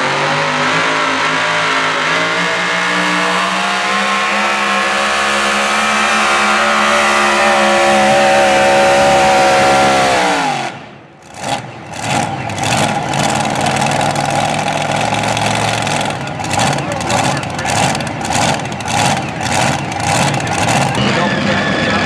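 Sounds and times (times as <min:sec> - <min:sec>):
tractor engine revving down and idling: 0:00.0 - 0:22.0.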